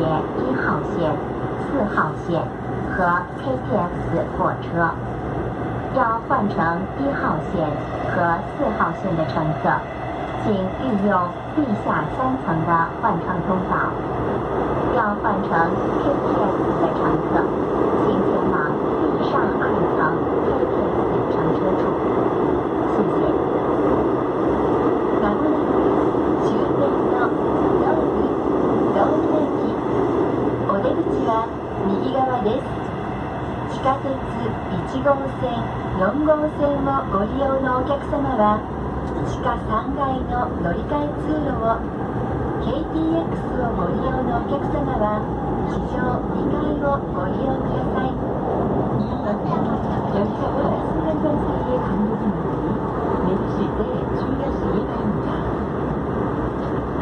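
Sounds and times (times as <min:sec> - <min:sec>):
train cabin running rumble: 0:00.0 - 0:57.0.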